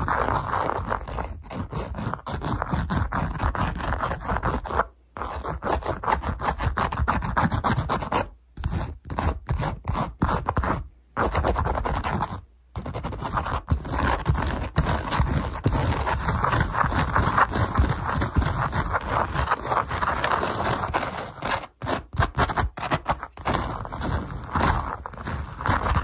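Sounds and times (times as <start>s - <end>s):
scratching on microphone: 0.0s - 26.0s.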